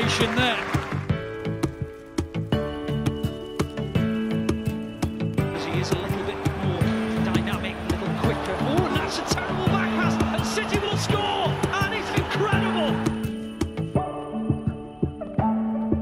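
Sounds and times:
stadium crowd noise: 0.0s - 1.1s, 5.5s - 13.4s
instrumental music with steady beat: 0.0s - 16.0s.

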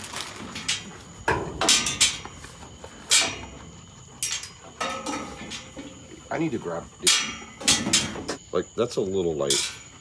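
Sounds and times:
metal gates clanking: 0.6s - 2.3s, 4.2s - 8.4s, 9.4s - 10.0s.

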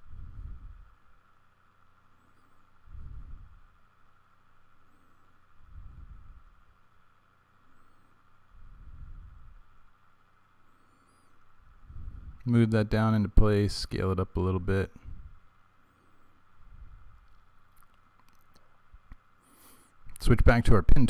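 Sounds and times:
faint steady hum: 0.0s - 21.0s
person breathing puffs: 19.4s - 20.1s.

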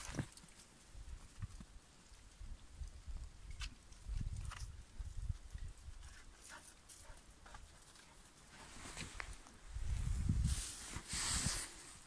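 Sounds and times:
low rumbling on microphone: 9.6s - 11.6s.

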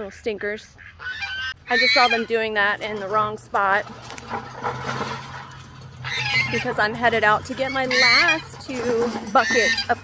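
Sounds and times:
metal cart rattling over grass: 1.7s - 10.0s.

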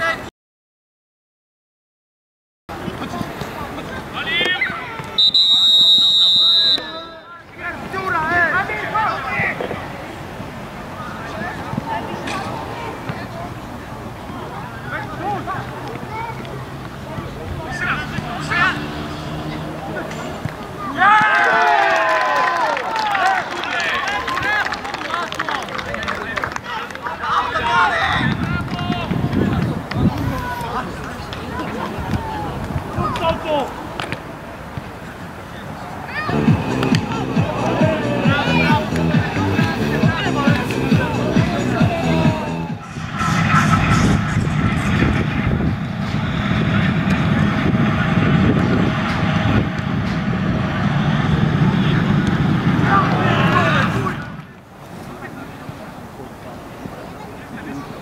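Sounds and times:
voices shouting excitedly: 17.6s - 24.8s, 35.8s - 42.8s
diesel locomotive engine rumbling: 36.3s - 54.7s.

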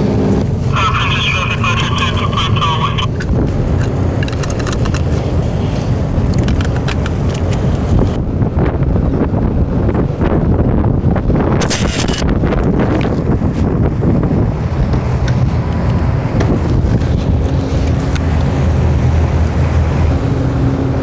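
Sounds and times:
boat engine rumble: 0.0s - 21.0s
wind buffeting microphone: 2.9s - 21.0s.

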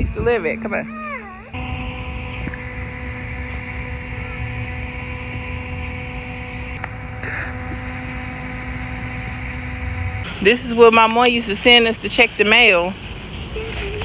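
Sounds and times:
handheld fan motor hum: 0.0s - 14.0s.

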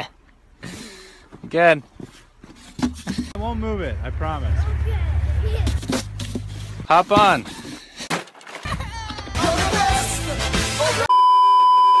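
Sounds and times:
music with heavy bass: 9.4s - 11.1s
steady test tone beep: 11.1s - 12.0s.

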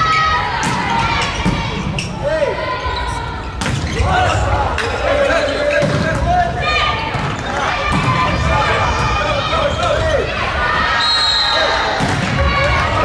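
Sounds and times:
players calling out: 0.0s - 13.0s.

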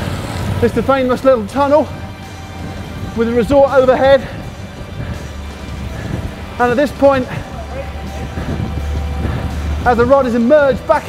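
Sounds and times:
low steady rumble: 0.0s - 10.9s
background music: 0.0s - 11.0s
man speaking: 0.6s - 1.9s, 3.2s - 4.4s, 6.6s - 8.1s, 9.8s - 11.0s.

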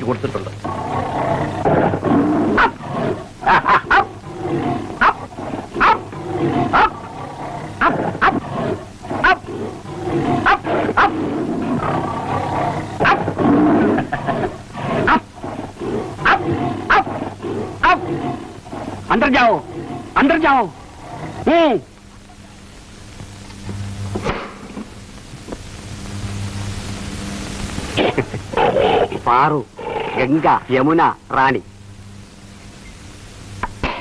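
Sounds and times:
tiger snarling and roaring: 0.6s - 21.9s, 28.0s - 30.4s.

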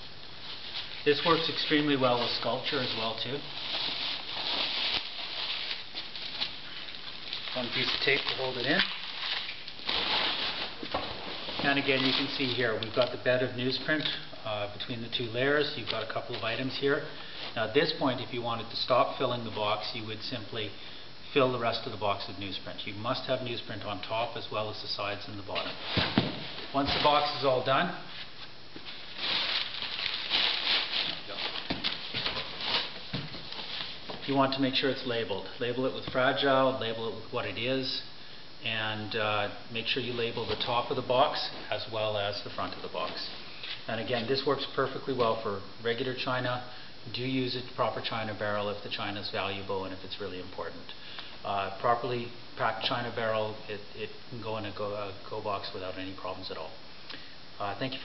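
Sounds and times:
bubble wrap crinkling: 0.0s - 20.0s, 24.1s - 37.1s, 39.8s - 45.4s
packing tape rasping: 0.5s - 13.2s, 28.8s - 34.2s.

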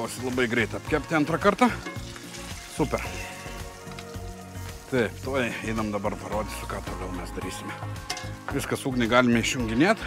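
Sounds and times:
background music sustained tones: 0.0s - 10.0s
hot oil sizzling: 0.0s - 10.0s.

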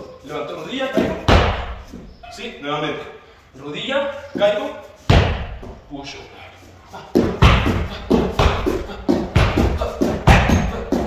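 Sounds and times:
kicks thudding on heavy bag: 1.0s - 2.1s, 5.1s - 5.8s, 7.2s - 11.0s.

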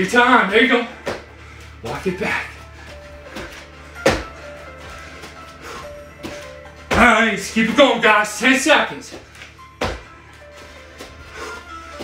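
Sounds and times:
background music: 0.0s - 12.0s
feet and hands thumping on wood floor: 1.0s - 1.4s, 2.8s - 7.9s, 9.0s - 12.0s.

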